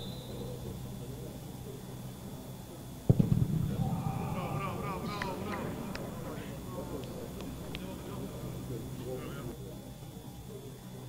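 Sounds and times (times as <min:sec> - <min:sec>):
voices: 0:00.0 - 0:11.0.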